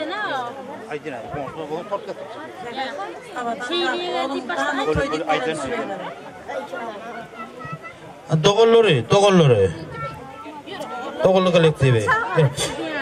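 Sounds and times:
voices chattering: 0.0s - 13.0s.

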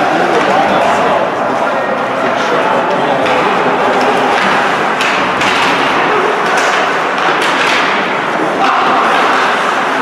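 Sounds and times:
arena noise: 0.0s - 10.0s
hockey sticks and puck knocks: 3.2s - 10.0s.

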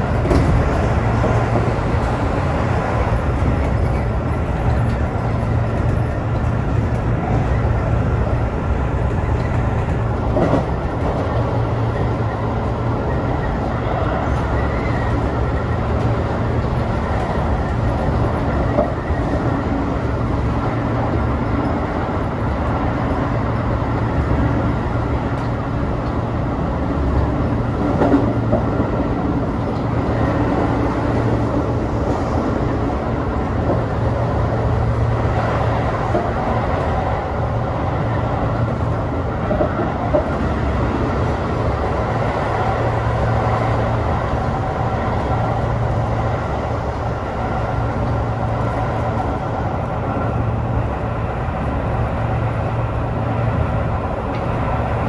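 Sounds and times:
train wheels rumbling on rail: 0.0s - 55.0s.

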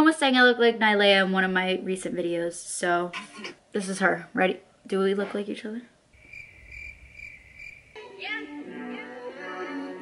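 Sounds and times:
high pulsing chirp tone: 6.2s - 8.0s
music with sung melody: 8.0s - 10.0s.

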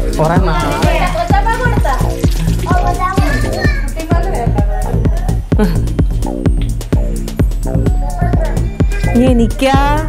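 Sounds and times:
music with steady beat: 0.0s - 10.0s
children's voices: 1.0s - 5.5s, 8.0s - 9.2s.

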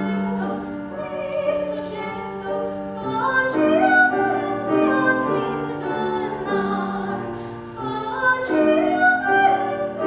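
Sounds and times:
classical female voice singing: 0.0s - 10.0s
grand piano: 0.0s - 10.0s.

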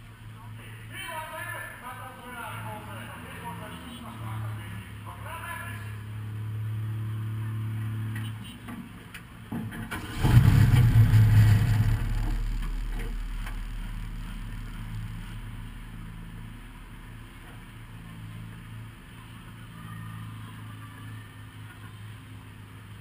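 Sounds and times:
car engine idling and revving: 2.4s - 23.0s.

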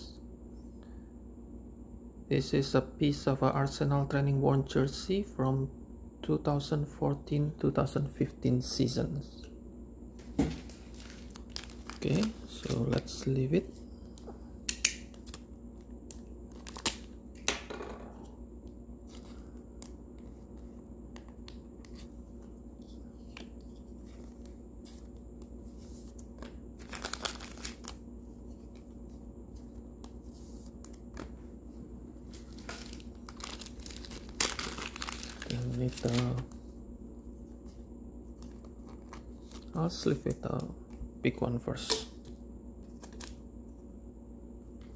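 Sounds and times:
trading cards shuffling: 10.5s - 13.4s, 19.0s - 31.4s, 32.3s - 36.6s, 37.6s - 41.0s
plastic bag crinkling: 10.6s - 12.9s, 26.8s - 28.0s, 32.3s - 36.5s.

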